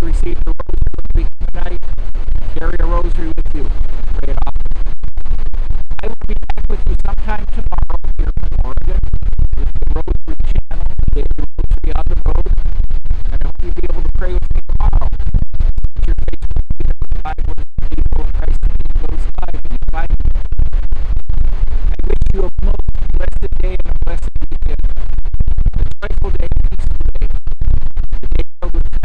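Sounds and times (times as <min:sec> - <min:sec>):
man talking: 0:00.0 - 0:01.8, 0:02.6 - 0:04.6, 0:06.0 - 0:09.0, 0:09.6 - 0:12.5, 0:13.3 - 0:15.2, 0:17.8 - 0:20.1, 0:22.0 - 0:24.8, 0:26.0 - 0:26.9, 0:28.6 - 0:29.0
wind buffeting microphone: 0:00.0 - 0:29.0.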